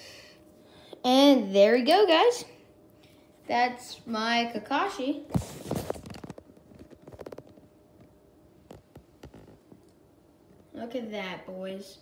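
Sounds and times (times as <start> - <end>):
soft handling clicks and rustles: 5.3 - 10.8.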